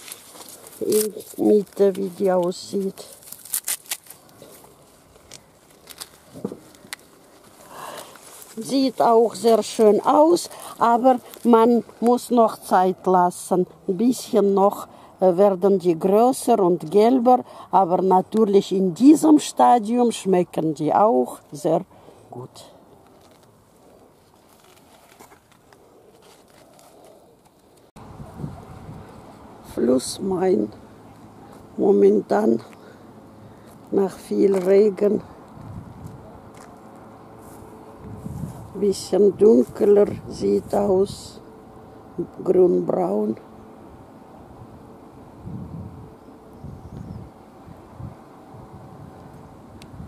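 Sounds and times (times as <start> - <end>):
corn husk rustling and crackling: 0.0 - 12.7, 23.0 - 27.9.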